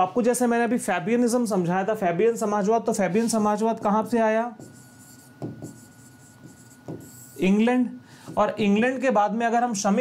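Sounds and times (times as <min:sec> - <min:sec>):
stylus scratching on glass: 0:03.2 - 0:07.6.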